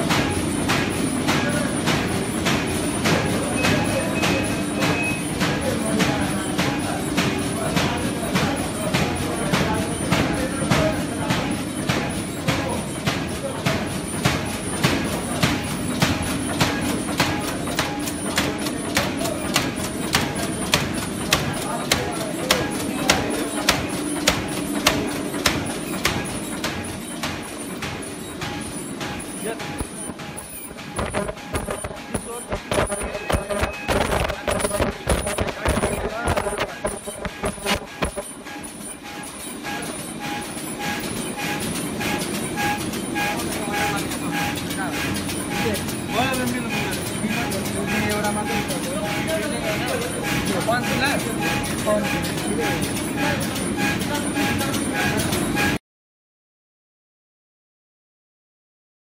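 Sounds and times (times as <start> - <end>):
irregular machine knocks: 0.0 - 38.6
machine clacking strokes: 0.0 - 55.8
machine hum: 14.1 - 55.7.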